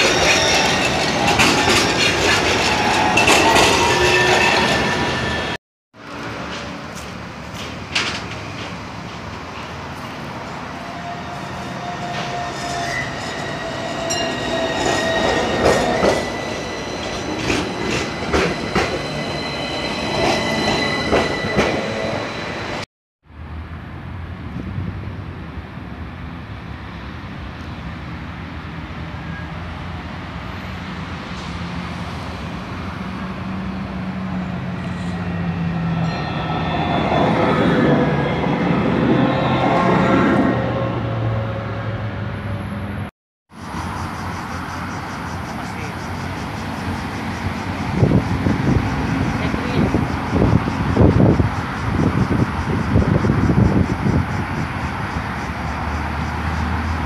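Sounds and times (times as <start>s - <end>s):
tram wheels squealing: 0.0s - 22.9s, 29.1s - 57.0s
tram humming: 0.0s - 57.0s
sharp clicks from rails: 6.2s - 9.8s.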